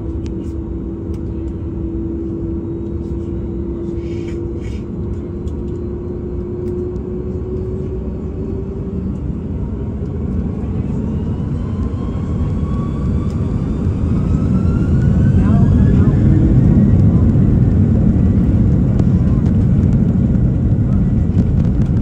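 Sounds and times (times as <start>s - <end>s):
jet engine whine rising: 0.0s - 22.0s
jet engines rumbling: 0.0s - 22.0s.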